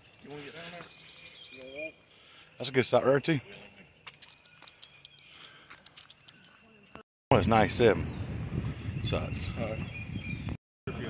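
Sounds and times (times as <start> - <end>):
faint irregular clicks: 4.0 - 6.6.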